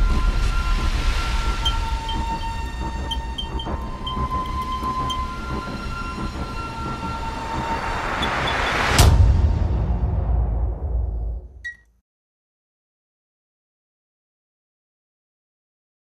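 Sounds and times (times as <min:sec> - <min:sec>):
deep rumble: 0:00.0 - 0:11.5
long high tones: 0:00.3 - 0:08.8
faint electronic chirps: 0:01.3 - 0:05.4.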